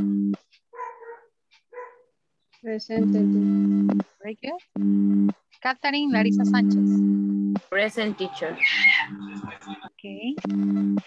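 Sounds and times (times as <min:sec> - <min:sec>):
dog barking: 0:00.7 - 0:02.1.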